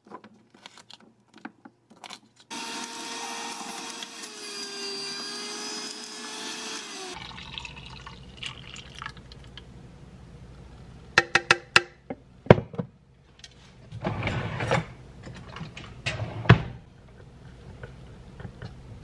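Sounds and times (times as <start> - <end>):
juicer motor whine: 2.5 - 7.2.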